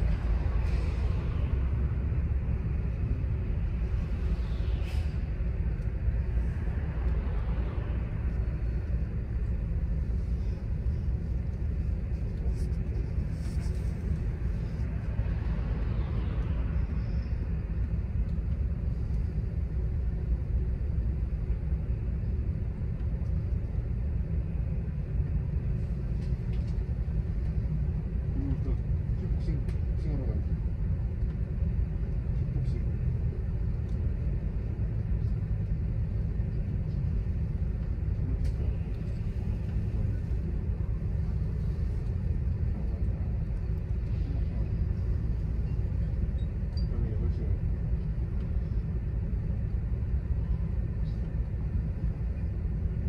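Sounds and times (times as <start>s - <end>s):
bus engine and tyres rumbling: 0.0s - 53.0s.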